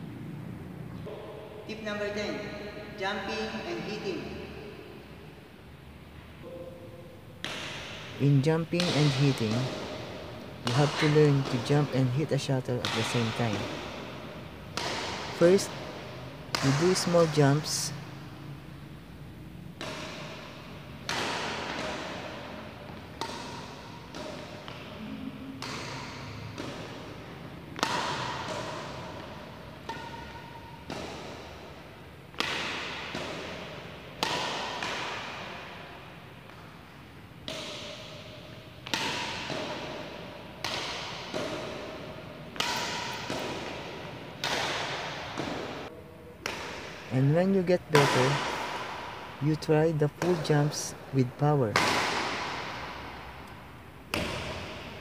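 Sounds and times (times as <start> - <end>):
indoor hall ambience hiss: 0.0 - 55.0
racket hitting shuttlecock: 6.4 - 55.0.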